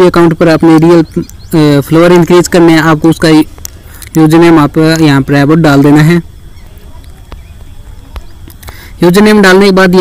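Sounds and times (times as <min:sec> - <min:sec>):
soft ticks: 0:00.8 - 0:01.5, 0:03.5 - 0:04.3.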